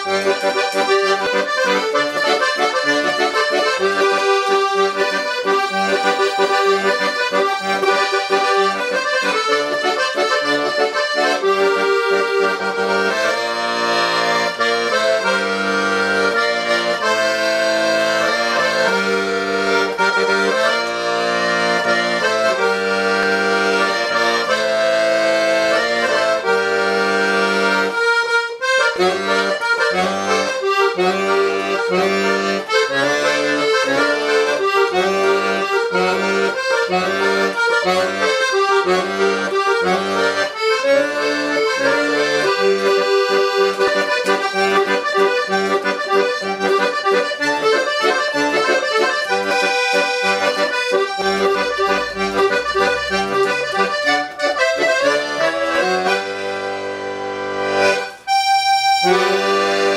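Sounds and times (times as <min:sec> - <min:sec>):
piano accordion playing: 0:00.0 - 0:59.9.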